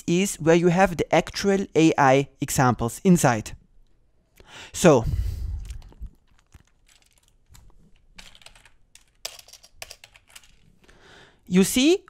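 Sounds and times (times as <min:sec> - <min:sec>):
keyboard typing: 0:05.6 - 0:10.8.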